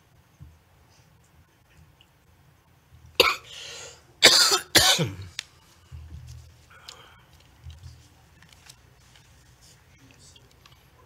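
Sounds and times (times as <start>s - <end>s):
person coughing: 3.2s - 5.3s.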